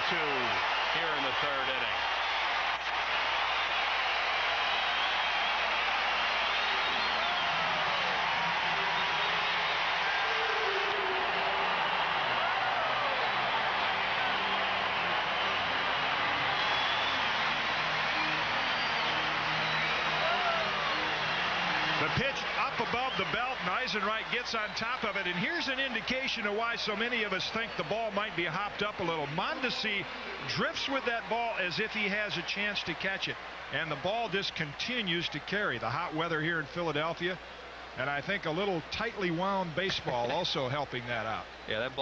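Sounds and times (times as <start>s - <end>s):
stadium crowd cheering: 0.0s - 42.0s.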